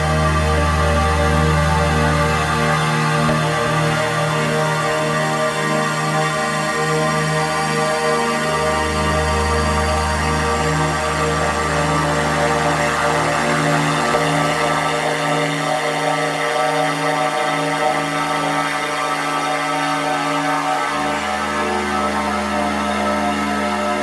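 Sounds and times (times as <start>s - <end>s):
sustained synth drones: 0.0s - 24.0s.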